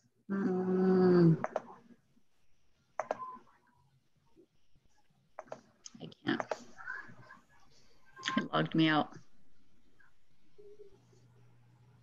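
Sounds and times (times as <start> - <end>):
faint computer clicks: 3.0 - 3.3, 5.4 - 6.7.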